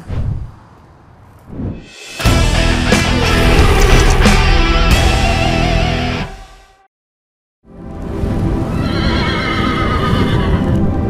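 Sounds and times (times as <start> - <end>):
logo music: 1.8 - 6.9
horse whinny: 8.8 - 10.7.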